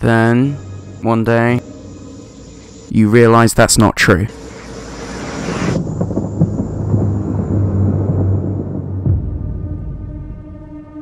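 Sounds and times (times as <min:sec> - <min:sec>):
low ominous rumbling drone: 0:00.0 - 0:11.0
hiss: 0:01.6 - 0:03.3, 0:04.2 - 0:07.6.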